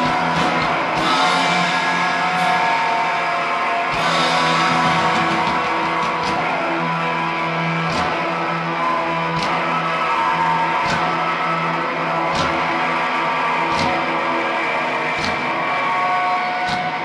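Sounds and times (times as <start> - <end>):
drum hits: 0.0 - 7.2, 7.8 - 9.8, 12.2 - 12.8
electric guitar and bass: 0.0 - 17.0.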